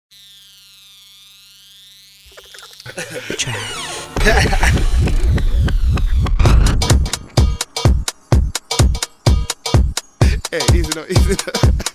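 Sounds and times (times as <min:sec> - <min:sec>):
low hum: 0:03.4 - 0:08.6.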